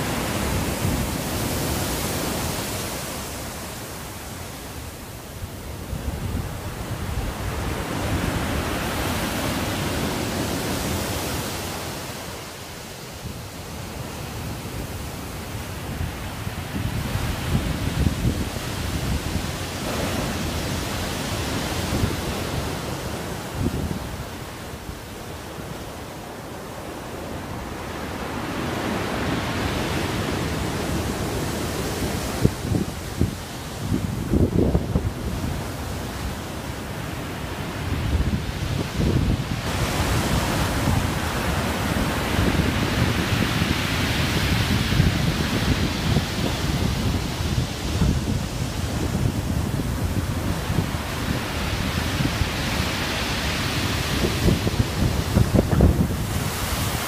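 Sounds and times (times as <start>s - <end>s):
waves crashing onto shore: 0.0s - 57.0s
wind buffeting microphone: 0.0s - 57.0s.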